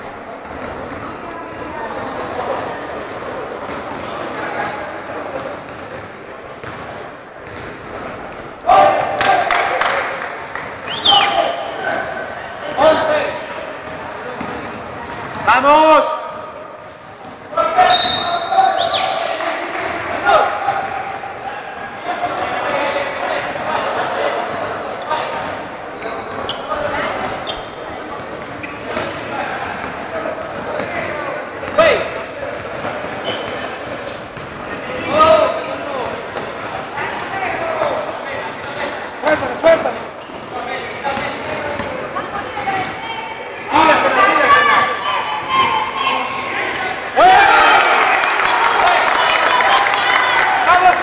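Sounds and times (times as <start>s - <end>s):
basketball bouncing on court: 5.6s - 8.1s, 13.7s - 15.6s, 16.3s - 17.4s
players shouting: 8.6s - 13.8s, 17.5s - 27.6s, 40.7s - 51.0s.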